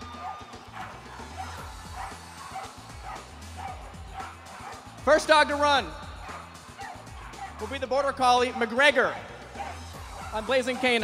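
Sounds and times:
dogs barking: 0:00.0 - 0:11.0
music with steady bass beat: 0:00.0 - 0:11.0.

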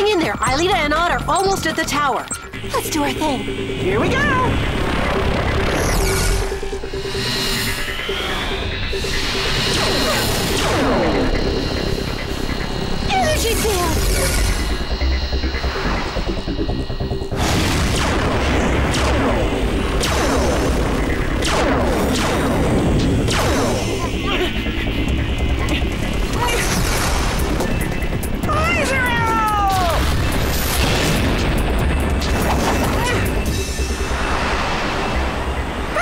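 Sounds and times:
low hum of hovering vehicles: 0:00.0 - 0:28.5
driving action music: 0:00.0 - 0:36.0
synthetic blast and zap effects: 0:03.9 - 0:28.2
booms and crashes: 0:17.3 - 0:23.9.

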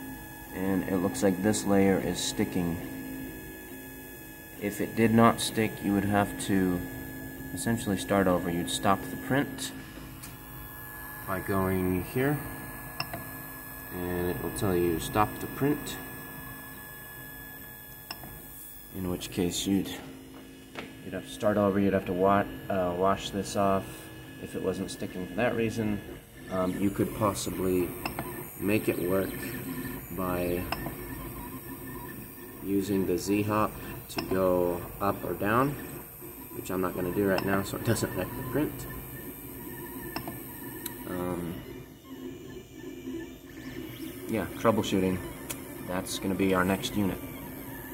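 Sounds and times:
faint steady whine: 0:00.0 - 0:47.9
printer fan hum: 0:00.0 - 0:47.9.

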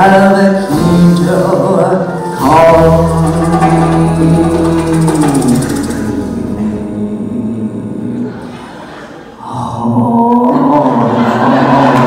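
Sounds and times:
live band music: 0:00.0 - 0:07.8
shaken percussion rattle: 0:03.0 - 0:06.4.

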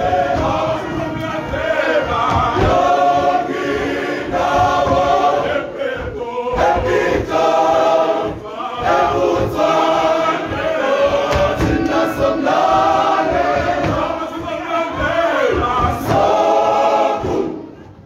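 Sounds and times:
male choir singing in harmony: 0:00.0 - 0:17.8.

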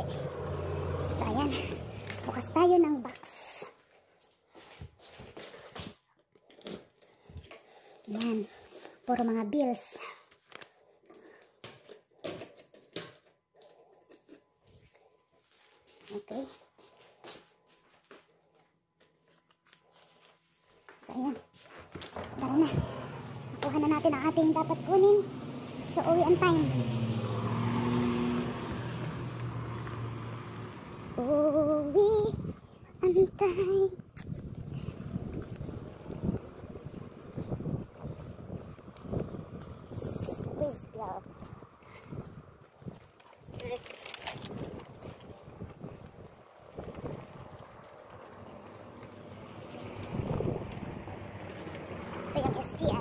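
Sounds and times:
wind buffeting microphone: 0:31.6 - 0:48.3, 0:49.8 - 0:51.4.

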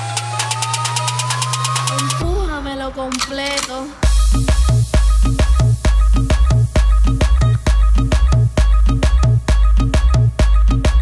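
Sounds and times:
synth sweep rising: 0:00.0 - 0:02.2
dance beat: 0:00.0 - 0:02.6, 0:04.0 - 0:11.0.

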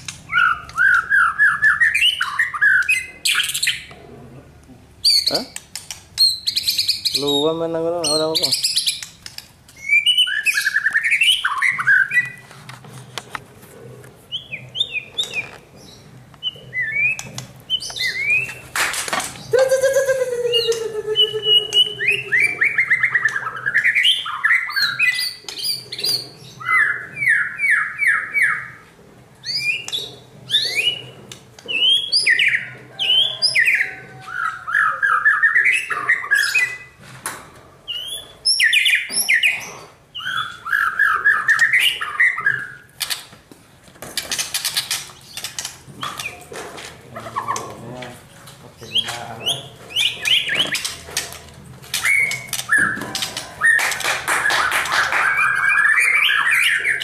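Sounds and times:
songbird whistling and trilling: 0:00.3 - 0:03.9, 0:09.8 - 0:12.4, 0:19.4 - 0:28.7, 0:37.9 - 0:42.8
harsh falling bird call: 0:18.1 - 0:23.3.

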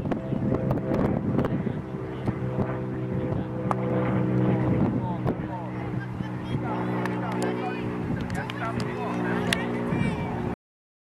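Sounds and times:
steady engine drone: 0:00.0 - 0:10.6
voices: 0:01.4 - 0:10.5.

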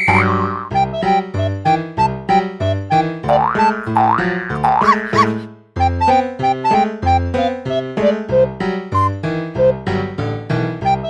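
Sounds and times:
bouncy keyboard tune: 0:00.0 - 0:11.0.

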